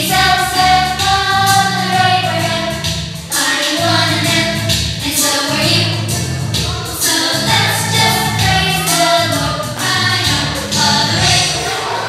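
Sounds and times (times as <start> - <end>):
choir singing: 6.6 - 12.0.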